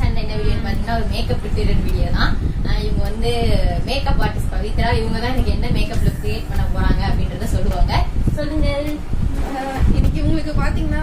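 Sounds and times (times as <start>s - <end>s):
steady low rumble: 0.0s - 11.0s
woman talking: 0.0s - 11.0s.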